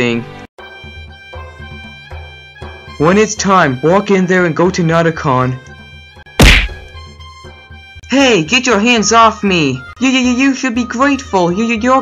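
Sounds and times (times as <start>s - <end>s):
faint background music: 0.0s - 12.0s
sharp whack: 6.4s - 7.0s.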